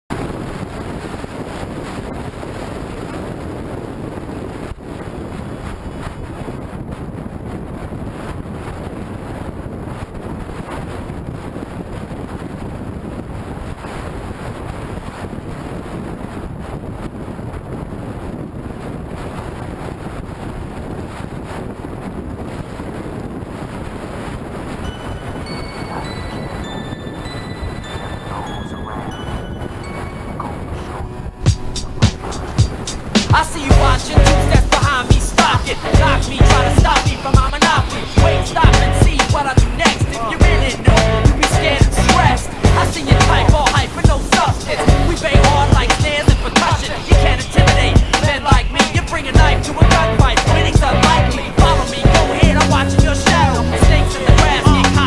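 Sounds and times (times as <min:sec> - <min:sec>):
wind rushing over microphone: 0:00.1 - 0:55.0
road traffic noise: 0:27.8 - 0:55.0.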